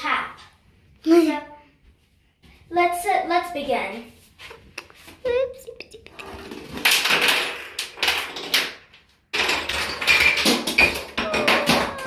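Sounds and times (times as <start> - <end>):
wooden dominoes clattering: 5.9 - 12.0.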